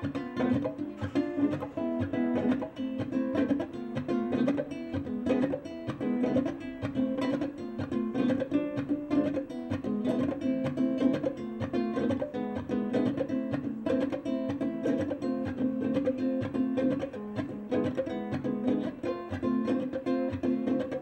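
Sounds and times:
ukulele plucking and strumming: 0.0s - 21.0s.

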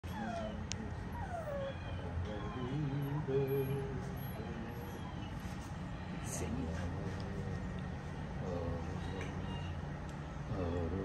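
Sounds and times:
puppy whining: 0.0s - 6.2s.

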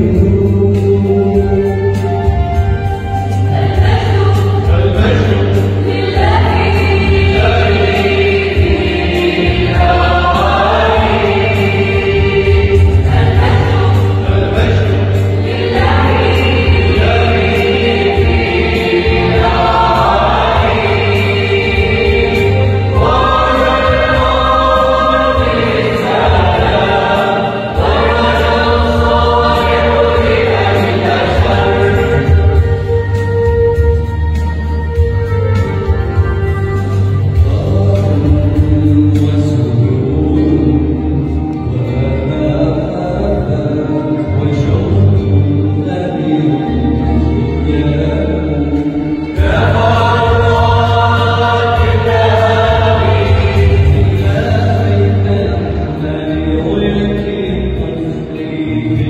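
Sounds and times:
choir singing a hymn: 0.0s - 59.0s
low accompaniment: 0.0s - 59.0s.

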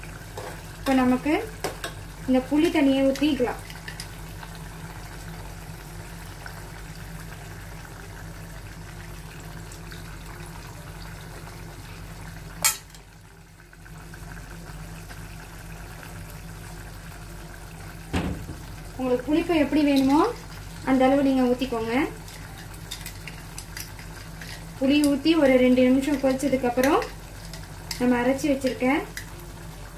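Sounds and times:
pot simmering on gas burner: 0.0s - 29.9s.

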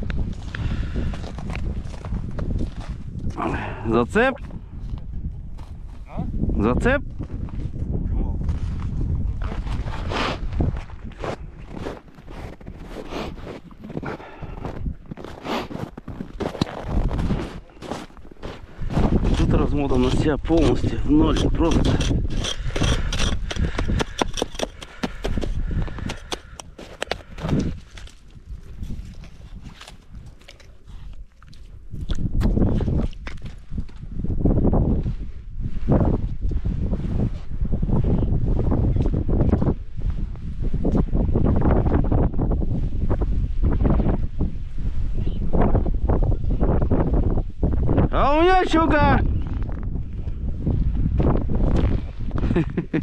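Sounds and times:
wind buffeting microphone: 0.0s - 53.0s
ice scoop clicking and scraping: 19.2s - 28.2s.

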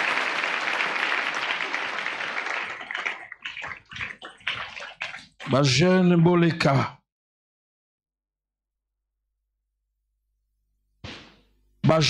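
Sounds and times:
congregation clapping: 0.0s - 5.7s.

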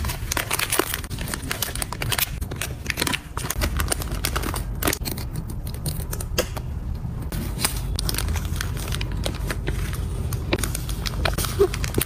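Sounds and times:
cellophane bag crinkling: 0.0s - 5.1s, 7.7s - 12.0s.

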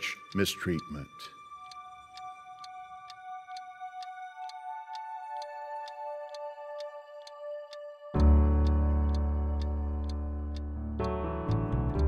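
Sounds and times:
alarm clock ticking: 0.0s - 11.1s.

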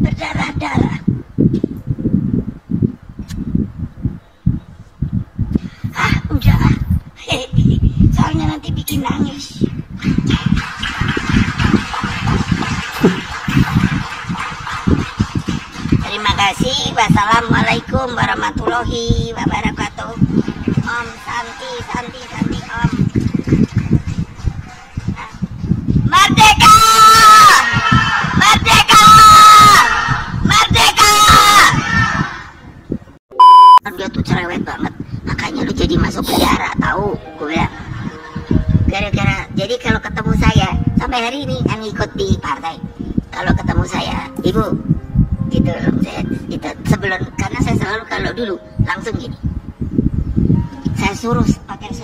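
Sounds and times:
audience applauding: 10.1s - 16.3s
voices: 15.8s - 23.1s
high-pitched electronic bleep: 33.3s - 33.8s.

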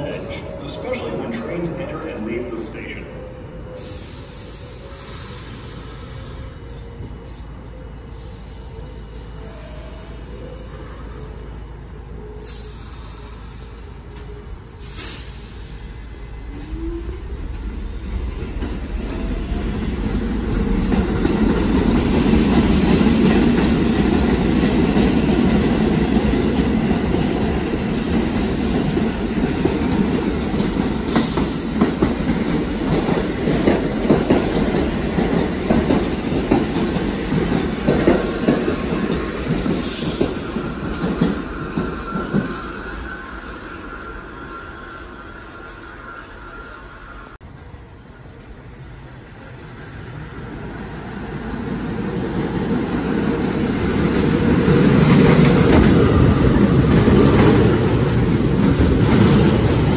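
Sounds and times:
subway train rumbling past: 0.0s - 59.9s.

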